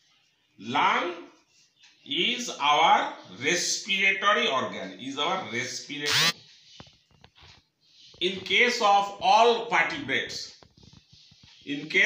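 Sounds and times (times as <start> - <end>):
marker squeaking on whiteboard: 6.0 - 8.7, 10.5 - 12.0.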